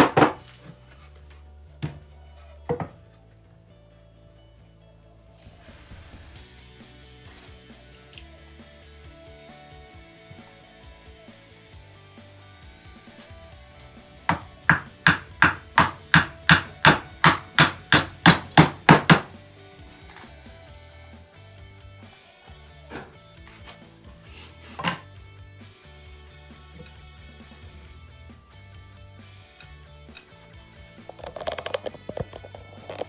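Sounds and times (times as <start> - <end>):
hammer driving nail into wood: 14.3 - 19.4.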